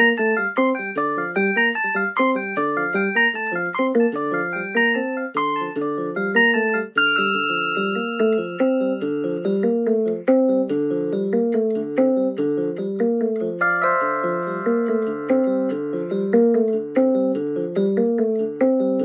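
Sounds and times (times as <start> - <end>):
electronic keyboard chords: 0.0 - 19.0.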